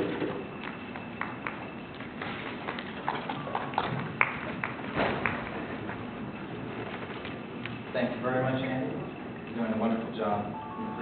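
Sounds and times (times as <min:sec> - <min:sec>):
light scattered applause: 0:02.7 - 0:05.5.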